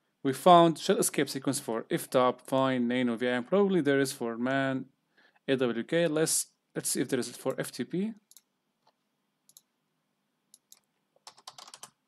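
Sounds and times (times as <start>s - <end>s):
computer keyboard clicks: 10.6s - 12.0s.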